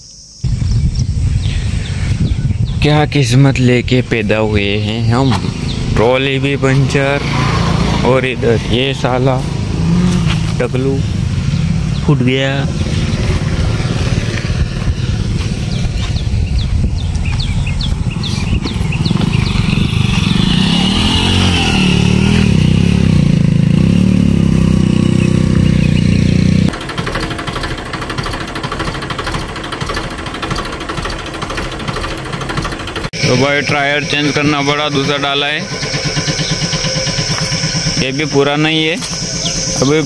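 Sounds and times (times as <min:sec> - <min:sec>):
tractor diesel engine running: 0:01.6 - 0:40.0.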